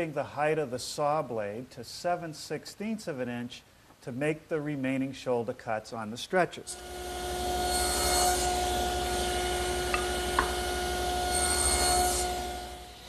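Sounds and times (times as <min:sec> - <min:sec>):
table saw cutting wood: 0:06.7 - 0:13.0.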